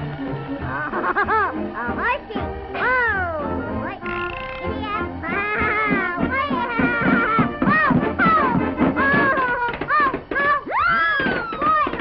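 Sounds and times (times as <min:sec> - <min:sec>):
cartoon music: 0:00.3 - 0:12.0.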